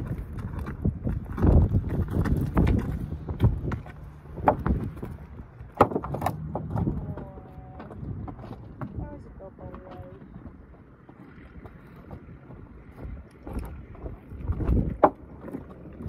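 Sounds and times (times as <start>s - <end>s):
wind on microphone: 0.0s - 5.6s, 6.4s - 16.0s
footsteps on wooden bridge: 0.0s - 16.0s
horse hooves on wooden planks: 0.0s - 16.0s.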